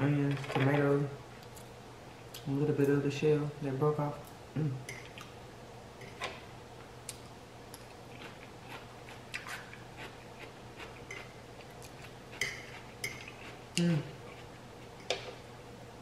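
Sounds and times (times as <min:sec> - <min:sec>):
chewing crunchy food: 0:07.0 - 0:14.6.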